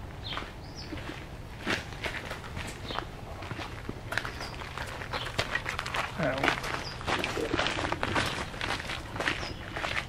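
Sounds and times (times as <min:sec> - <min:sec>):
footsteps on gravel: 0:00.2 - 0:10.0.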